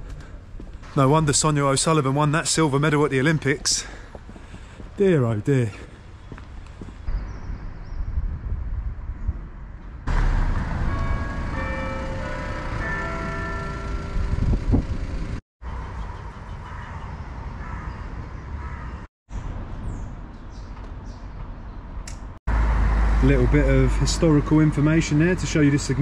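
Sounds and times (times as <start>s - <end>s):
street ambience: 0.0s - 26.0s
low rumble on microphone: 6.8s - 11.6s.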